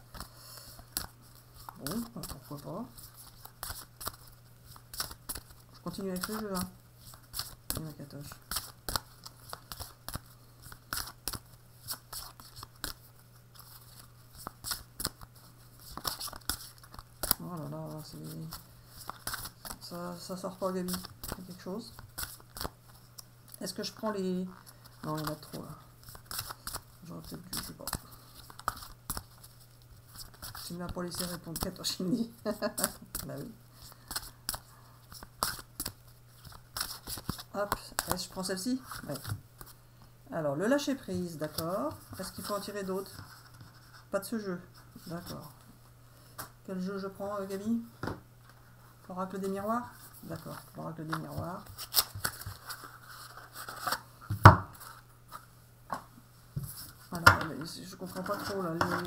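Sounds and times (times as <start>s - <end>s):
cards being shuffled: 0.1s - 23.7s, 24.5s - 39.8s, 49.3s - 55.5s, 56.7s - 59.0s.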